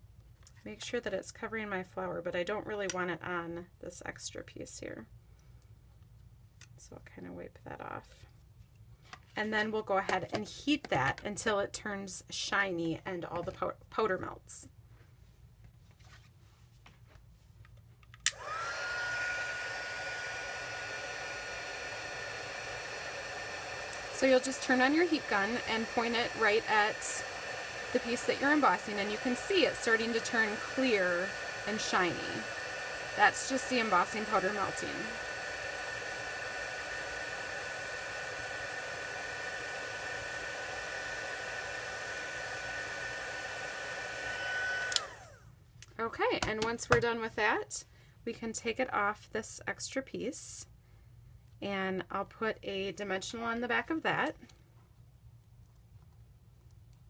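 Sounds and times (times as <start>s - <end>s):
heat gun motor whine: 18.3s - 45.4s
heat gun switch click: 44.9s - 45.1s.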